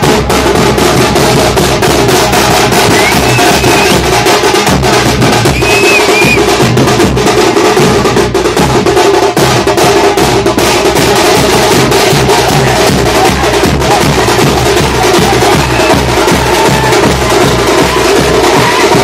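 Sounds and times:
drums pounding fast beats: 0.0s - 19.0s
short whistles: 2.9s - 4.0s, 5.5s - 6.5s.

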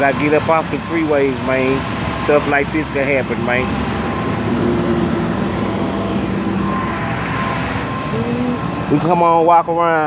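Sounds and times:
freeway traffic noise: 0.0s - 10.0s
heavy truck engines running: 0.0s - 10.0s
faint high beeps: 5.5s - 9.1s.

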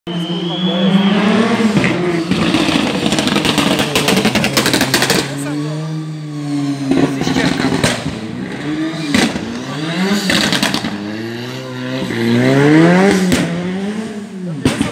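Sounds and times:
rally car engine revving: 0.1s - 14.9s.

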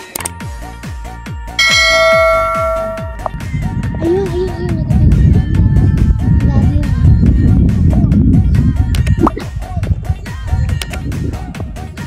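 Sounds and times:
bell-like chime: 1.6s - 3.3s
electronic music with steady beat: 1.6s - 3.3s.

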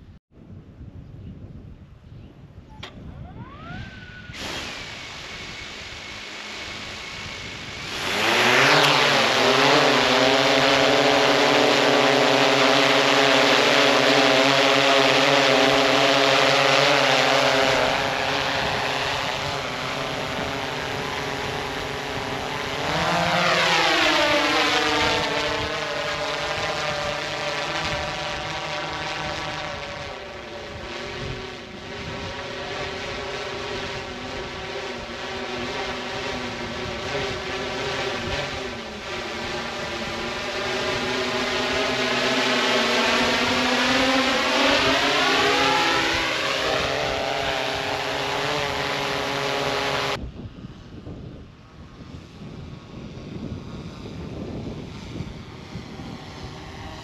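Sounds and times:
drone propellers whining: 2.7s - 50.2s, 53.8s - 57.0s.

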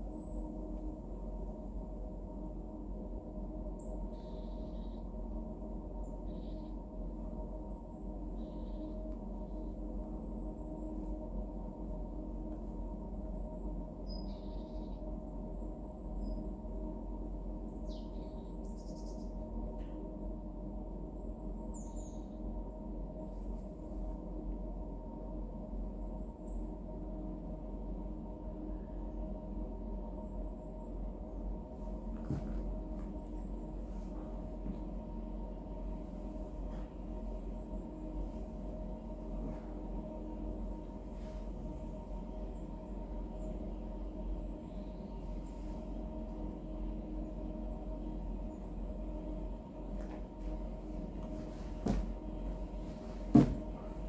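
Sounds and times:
low drone with held tones: 0.0s - 54.0s
faint bird chirps: 3.8s - 5.1s, 6.0s - 6.8s, 8.3s - 9.8s, 14.0s - 15.2s, 16.2s - 16.5s, 17.7s - 19.4s, 21.6s - 22.4s.

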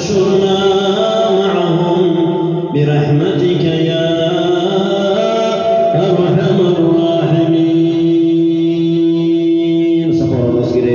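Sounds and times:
man chanting into microphone: 0.0s - 10.9s.

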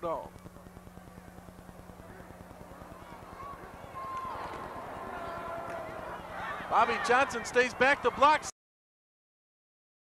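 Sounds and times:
low electrical hum: 0.0s - 8.5s
faint distant voices: 0.5s - 8.4s.

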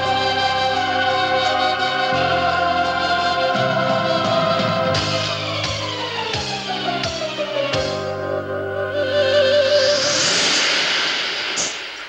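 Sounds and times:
loud rushing wind-like noise: 9.4s - 12.0s.

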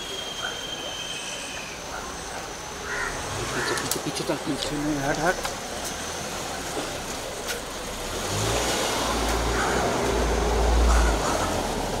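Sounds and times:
outdoor background noise: 0.0s - 12.0s
vehicle engine low rumble: 1.9s - 12.0s
crows cawing: 2.8s - 4.2s, 9.5s - 10.0s, 10.8s - 11.7s.

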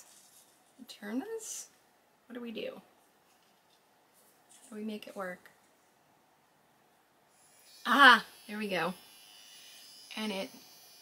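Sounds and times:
woman's voice: 0.8s - 1.7s, 2.3s - 2.9s, 4.7s - 5.5s, 7.9s - 9.0s, 10.1s - 10.5s
facial massager buzzing: 7.3s - 11.0s.

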